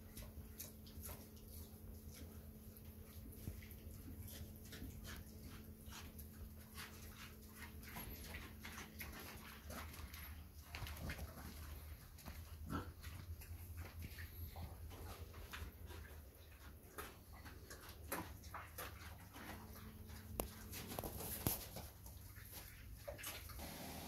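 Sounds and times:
small clicks and rustles: 0:16.9 - 0:23.6.

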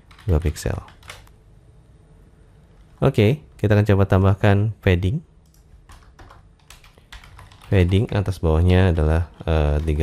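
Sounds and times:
keyboard typing: 0:00.0 - 0:01.3, 0:05.4 - 0:10.0.

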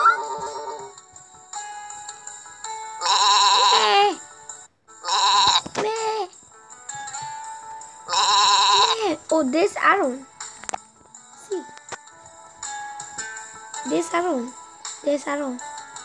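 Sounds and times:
soft background music: 0:00.0 - 0:16.0
sheep bleating: 0:03.0 - 0:04.0, 0:05.0 - 0:05.6, 0:08.1 - 0:09.1.

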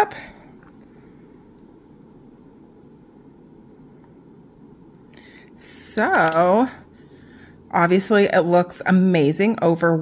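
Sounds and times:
woman speaking: 0:00.0 - 0:00.4, 0:05.6 - 0:06.9, 0:07.7 - 0:10.0
steady low hum: 0:00.0 - 0:10.0.

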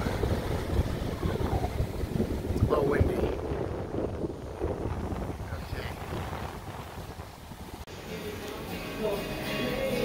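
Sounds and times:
wind buffeting microphone: 0:00.0 - 0:07.9.

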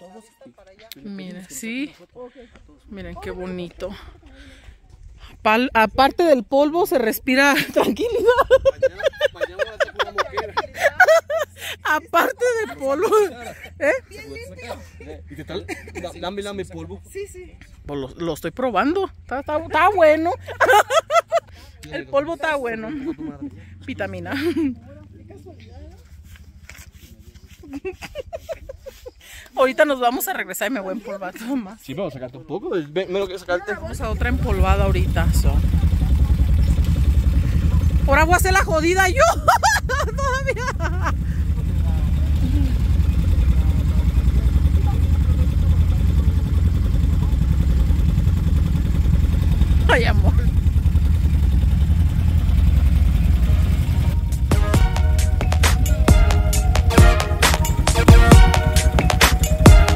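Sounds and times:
people talking: 0:00.0 - 0:04.1, 0:05.3 - 0:26.1, 0:29.3 - 0:47.8, 0:49.8 - 0:50.6
quad bike engines idling: 0:00.9 - 0:59.9
low steady rumble: 0:02.8 - 0:26.8, 0:33.8 - 0:59.9.

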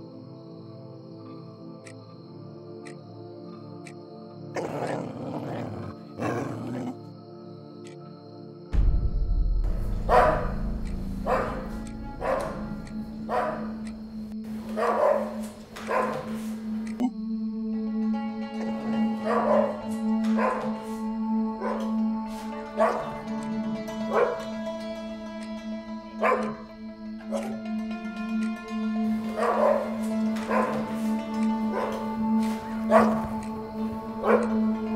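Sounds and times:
background music: 0:00.0 - 0:34.9
dog barking: 0:04.6 - 0:07.0, 0:10.0 - 0:10.6, 0:11.2 - 0:13.9, 0:14.6 - 0:17.1, 0:19.2 - 0:21.0, 0:21.6 - 0:22.0, 0:22.7 - 0:23.2, 0:24.1 - 0:24.5, 0:26.2 - 0:26.7, 0:27.3 - 0:27.6, 0:29.3 - 0:33.6, 0:34.2 - 0:34.6.

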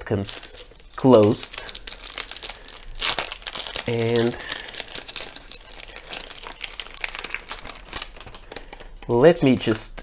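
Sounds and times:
plastic film crinkling: 0:00.0 - 0:10.0.

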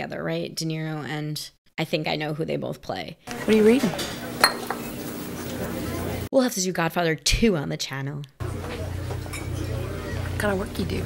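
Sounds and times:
tableware clinking: 0:03.8 - 0:04.9, 0:09.2 - 0:09.7.

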